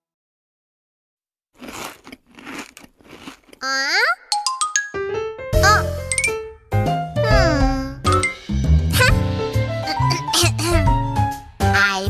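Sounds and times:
cartoon crunching bites: 0:01.6 - 0:04.1.

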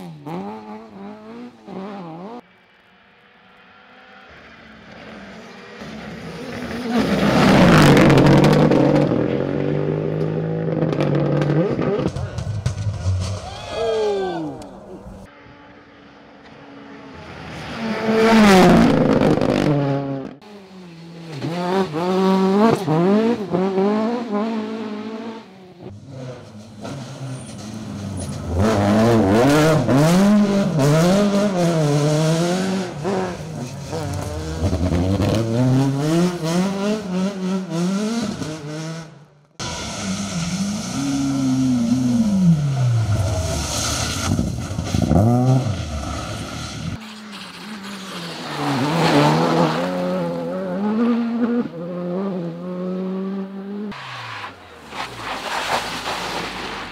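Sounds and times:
rally car engines revving: 0:00.0 - 0:56.9.

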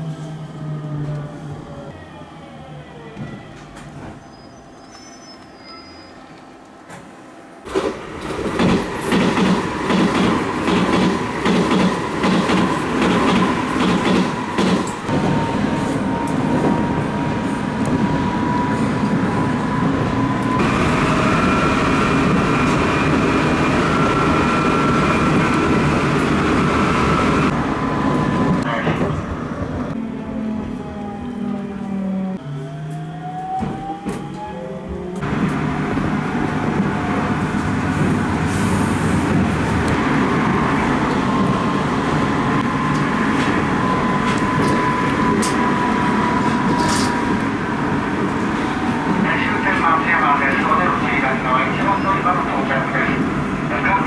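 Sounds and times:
rail clicks: 0:07.7 - 0:15.2.

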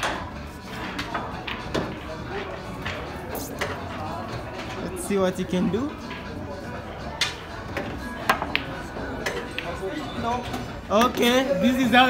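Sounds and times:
pool cue striking ball: 0:00.0 - 0:02.2
pool balls clicking: 0:00.0 - 0:04.9, 0:05.9 - 0:06.5, 0:07.1 - 0:11.3
background chatter: 0:00.0 - 0:12.0
background music: 0:00.0 - 0:12.0.

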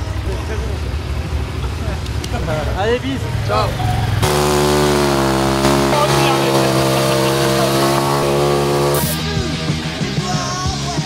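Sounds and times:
dirt bike engine idling: 0:00.0 - 0:09.3
rock music: 0:03.7 - 0:11.0.

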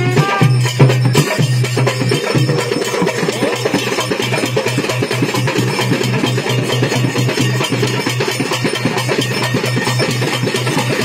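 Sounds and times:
loud live band music: 0:00.0 - 0:11.0.

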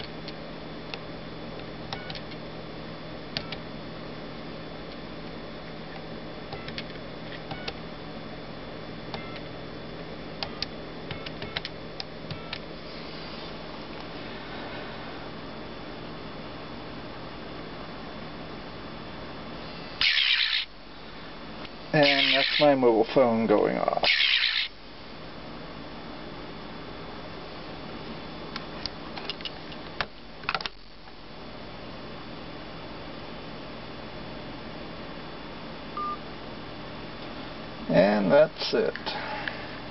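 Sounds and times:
telephone beep: 0:36.0 - 0:36.2.

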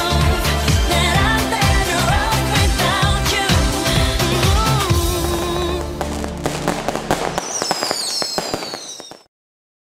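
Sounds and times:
fireworks bangs and pops: 0:04.3 - 0:09.3
falling firework whistles: 0:05.3 - 0:09.3.

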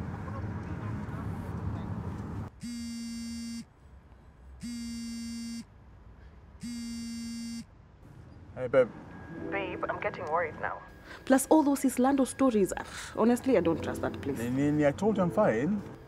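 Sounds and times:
car road and engine noise: 0:00.0 - 0:02.6, 0:07.7 - 0:16.0
mobile phone vibrating: 0:02.6 - 0:03.7, 0:04.6 - 0:05.7, 0:06.6 - 0:07.6.

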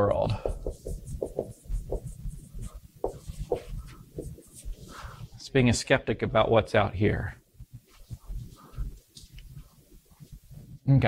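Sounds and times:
marker squeaking on whiteboard: 0:00.4 - 0:05.0.

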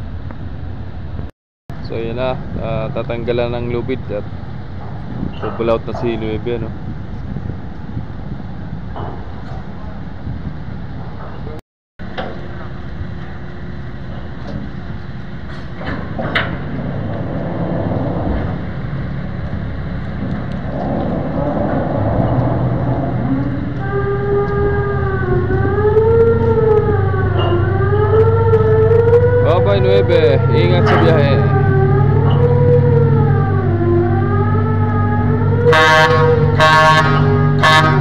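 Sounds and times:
ship engines rumbling: 0:00.0 - 0:38.0
siren-like rising and falling tone: 0:16.8 - 0:38.0.

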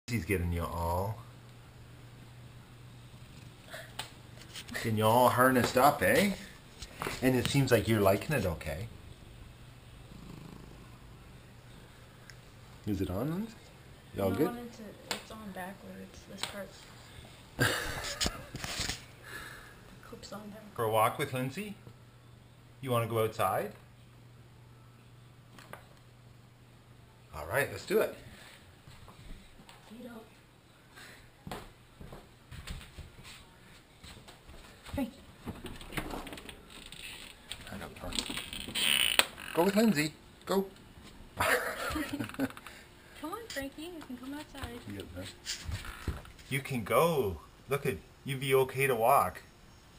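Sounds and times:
cat purring faintly: 0:10.0 - 0:11.5
door hardware creaking: 0:35.8 - 0:37.5, 0:38.2 - 0:39.8.

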